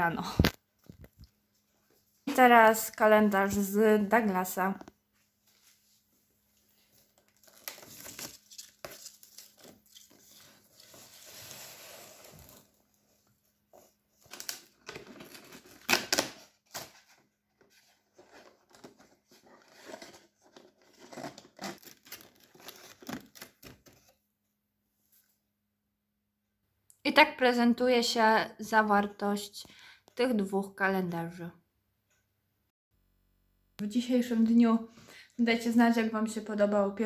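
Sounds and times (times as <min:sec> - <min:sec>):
cardboard tearing and crinkling: 0:07.2 - 0:12.8, 0:14.2 - 0:24.1.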